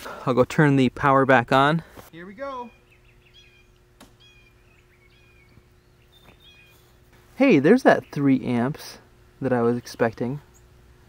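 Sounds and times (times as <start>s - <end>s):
birds chirping: 2.1s - 11.0s.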